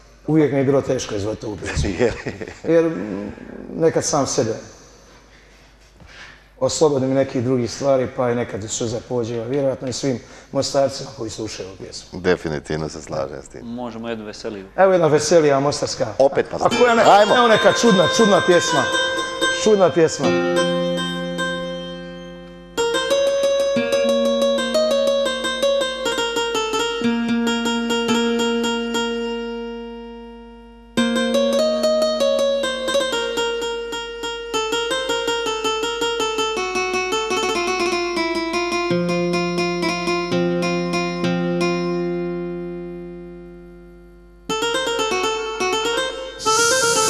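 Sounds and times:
keyboard playing guitar-like runs: 16.7s - 47.0s.

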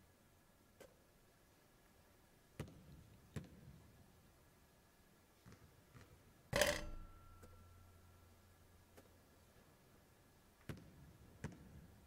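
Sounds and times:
basketball clanging on metal rim: 6.6s - 7.8s.

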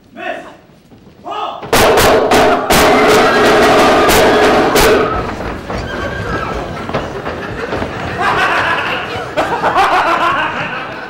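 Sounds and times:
crowd murmuring: 2.6s - 11.0s
people laughing: 5.0s - 11.0s.

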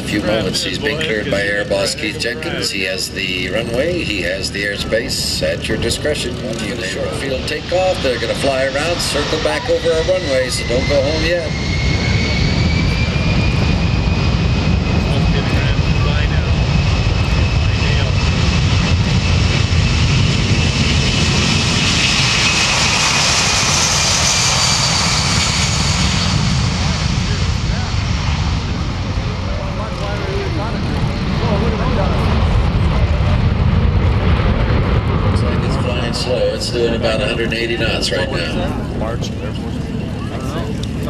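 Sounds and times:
jet engine roar with whine: 0.0s - 41.0s.

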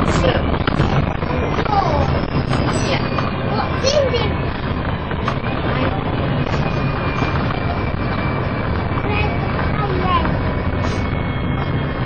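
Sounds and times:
bus engine and road rumble: 0.0s - 12.0s
passengers talking: 0.0s - 12.0s.

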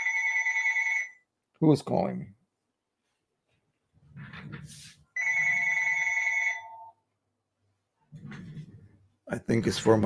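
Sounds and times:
telephone ringing: 0.0s - 1.2s, 5.2s - 7.0s.

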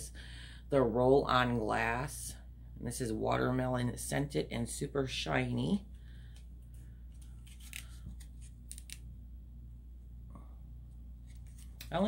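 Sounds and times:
low steady hum: 0.0s - 12.0s
plastic package crinkling: 7.3s - 9.0s.

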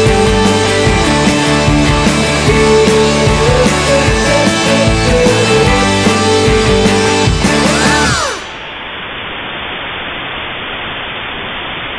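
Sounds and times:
television static hiss: 8.5s - 11.9s.

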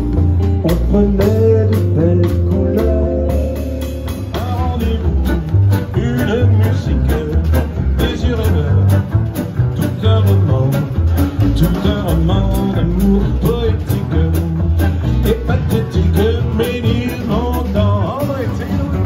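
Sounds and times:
drum kit beat on cymbals: 0.0s - 19.0s
guitar: 0.0s - 19.0s
upright double bass: 0.0s - 19.0s.

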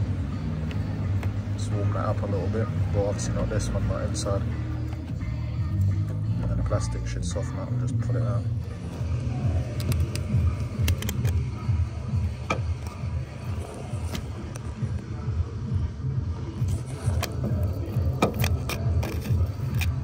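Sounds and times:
heating tool low rumble: 7.7s - 20.0s.

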